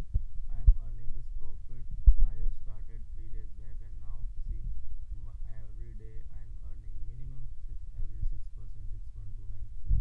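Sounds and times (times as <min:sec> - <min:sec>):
short low thumps: 0:00.0 - 0:10.0
steady low hum: 0:00.0 - 0:10.0
person talking: 0:00.5 - 0:09.8.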